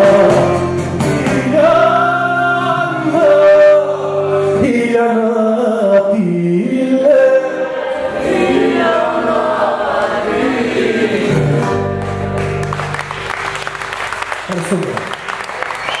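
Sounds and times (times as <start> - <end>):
man singing: 0.0 - 7.8
applause: 12.0 - 16.0.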